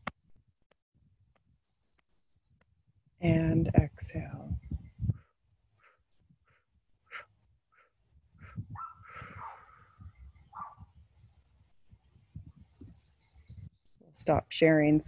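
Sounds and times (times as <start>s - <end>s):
breath puffs through pinched lips: 5.0s - 10.2s.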